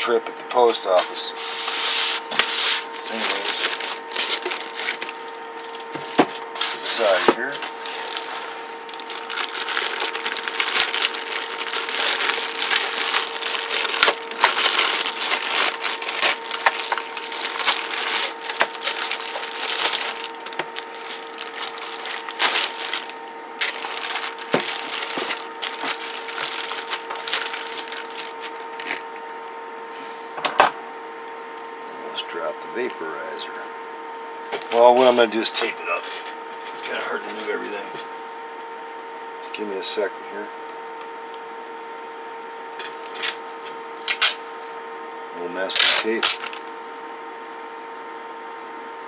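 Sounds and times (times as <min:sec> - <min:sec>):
styrofoam and plastic rustling: 0:00.8 - 0:29.0, 0:45.7 - 0:46.7.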